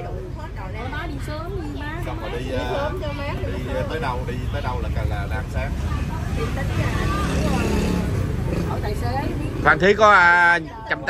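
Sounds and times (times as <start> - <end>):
people talking: 0.0 - 10.0
street traffic rumble: 0.0 - 11.0.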